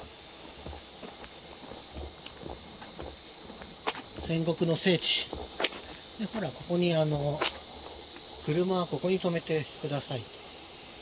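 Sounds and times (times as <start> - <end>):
insects shrilling: 0.0 - 11.0.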